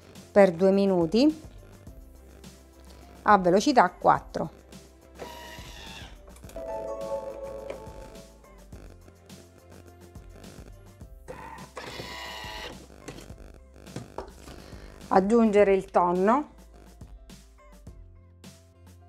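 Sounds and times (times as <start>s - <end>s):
soft background music: 0.0s - 19.0s.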